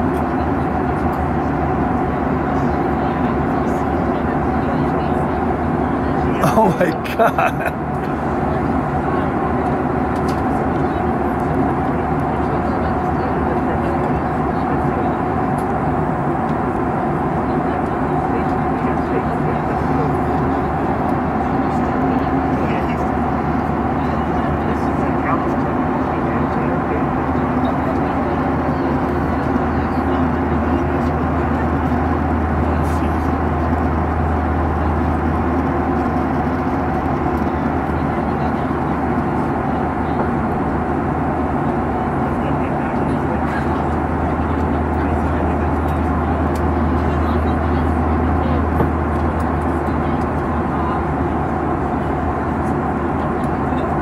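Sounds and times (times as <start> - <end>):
jet engine drone: 0.0 - 54.0.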